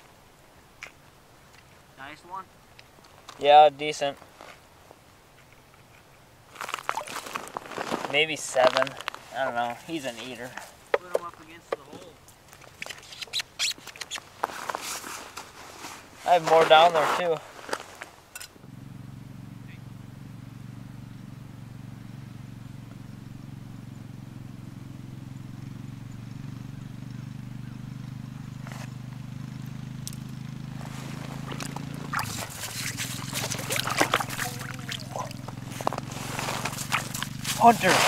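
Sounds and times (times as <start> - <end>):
clicks knocks and scraping on ice: 6.6 - 9.8, 31.1 - 38.0
low steady drone: 18.6 - 38.0.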